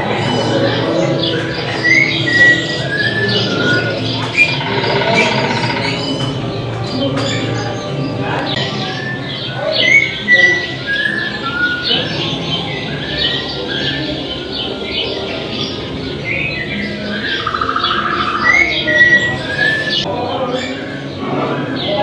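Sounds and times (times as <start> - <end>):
birds chirping: 0.0 - 22.0.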